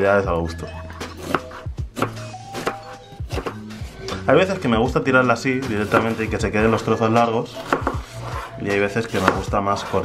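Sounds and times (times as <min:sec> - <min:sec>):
background music: 0:00.0 - 0:10.0
knife slicing onion: 0:01.1 - 0:04.0, 0:05.6 - 0:06.4, 0:07.5 - 0:10.0.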